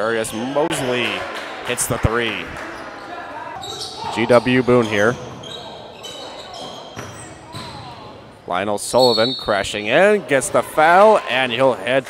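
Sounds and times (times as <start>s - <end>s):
sneaker squeaks: 2.6s - 8.3s, 9.0s - 9.8s
basketball bouncing: 6.6s - 8.1s.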